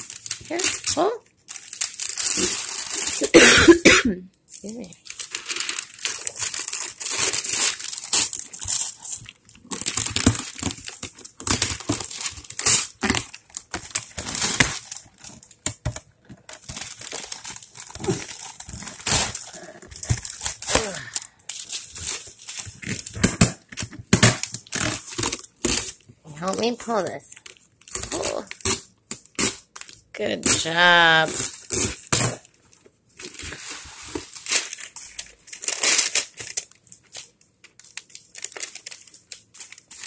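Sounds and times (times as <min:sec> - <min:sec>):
wrapping paper crinkling and tearing: 0:00.0 - 0:03.4, 0:04.6 - 0:40.0.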